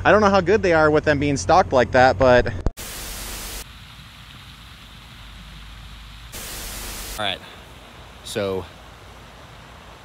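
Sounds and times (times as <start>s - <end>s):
fountain spray rushing: 2.8s - 10.0s.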